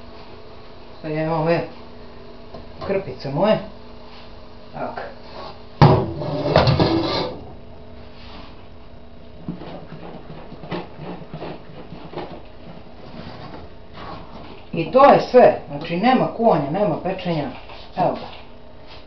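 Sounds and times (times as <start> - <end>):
pot set down on worktop: 5.8 - 7.0.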